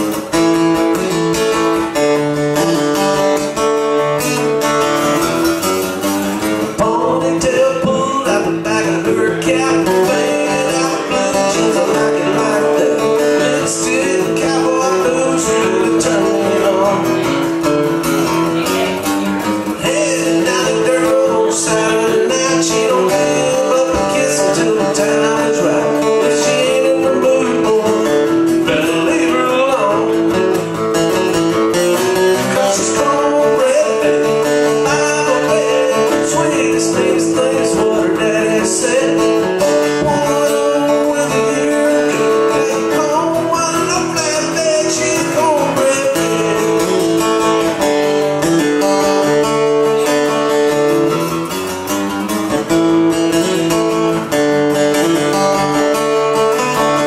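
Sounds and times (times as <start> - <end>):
guitar strummed country song: 0.0 - 57.0.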